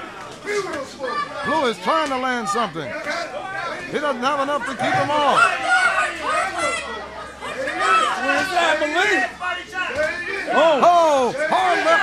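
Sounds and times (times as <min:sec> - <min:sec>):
raised voices calling out: 0:02.8 - 0:12.0.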